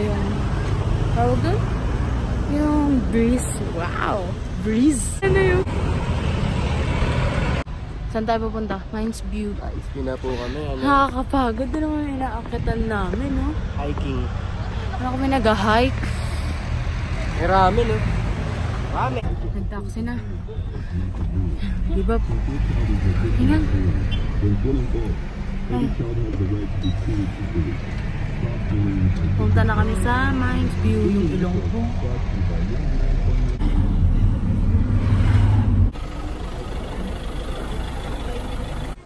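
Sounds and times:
people talking: 0:00.0 - 0:00.4, 0:01.2 - 0:01.6, 0:02.5 - 0:05.7, 0:08.2 - 0:14.2, 0:15.0 - 0:16.2, 0:19.0 - 0:27.8, 0:28.4 - 0:33.9
car engine rumble and road noise: 0:00.0 - 0:39.0.

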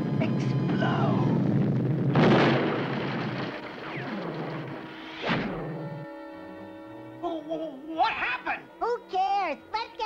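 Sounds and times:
cartoon explosion: 0:00.7 - 0:05.6
sustained music chords: 0:04.8 - 0:08.0.

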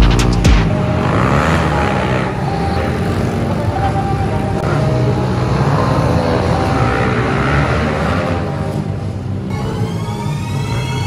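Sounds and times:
small motorbike engines revving: 0:00.0 - 0:11.0.

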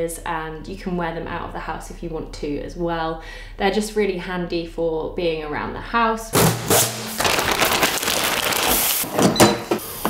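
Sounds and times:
plastic packaging crinkling: 0:06.4 - 0:09.3.

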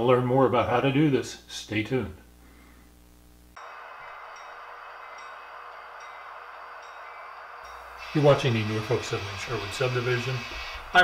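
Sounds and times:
model locomotives humming: 0:03.6 - 0:11.0.

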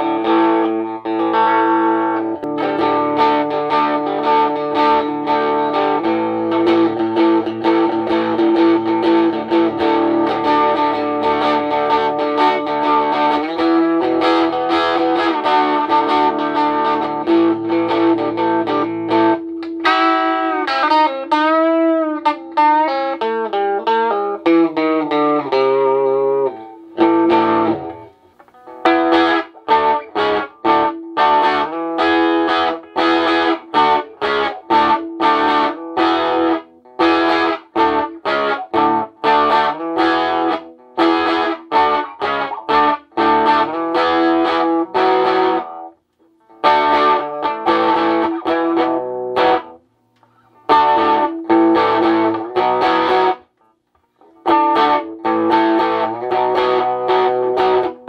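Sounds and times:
electric guitar bent single notes: 0:00.0 - 0:58.0
electric guitar strummed chords: 0:00.0 - 0:58.0.

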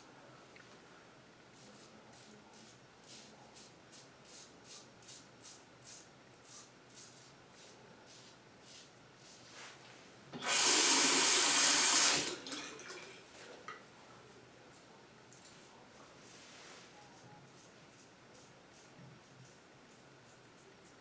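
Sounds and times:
sink tap running: 0:10.4 - 0:12.5.

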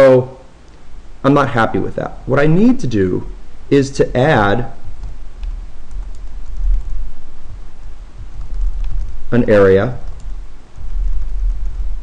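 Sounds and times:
steady low rumble: 0:00.4 - 0:12.0
computer keyboard typing: 0:05.0 - 0:07.1, 0:08.2 - 0:12.0.

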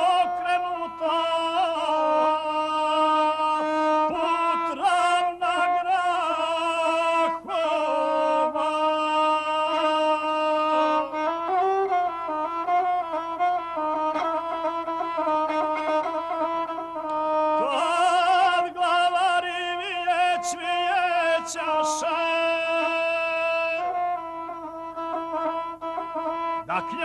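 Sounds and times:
bowed one-string fiddle: 0:00.0 - 0:27.0
man chanting epic singing: 0:17.6 - 0:24.0, 0:26.6 - 0:27.0.

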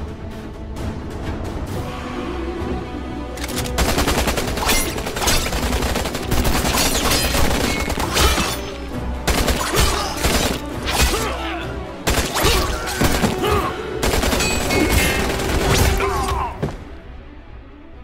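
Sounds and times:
dramatic film score music: 0:00.0 - 0:18.0.

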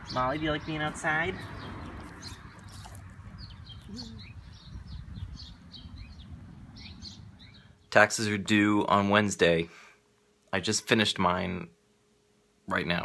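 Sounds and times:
small birds chirping: 0:00.0 - 0:08.2.

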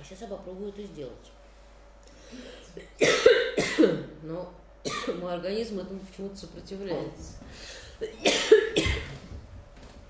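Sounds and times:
woman coughing: 0:02.6 - 0:04.2, 0:04.8 - 0:05.3, 0:08.0 - 0:09.2.

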